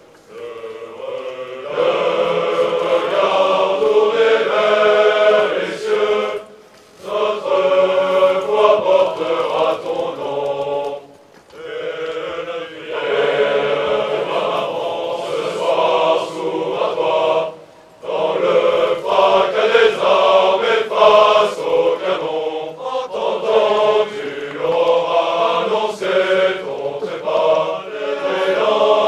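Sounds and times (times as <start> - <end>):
massed choir singing: 0.0 - 29.0.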